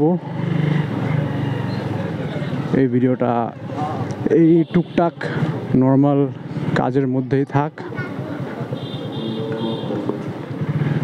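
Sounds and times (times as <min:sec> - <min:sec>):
motorcycle engine running: 0:08.2 - 0:11.0.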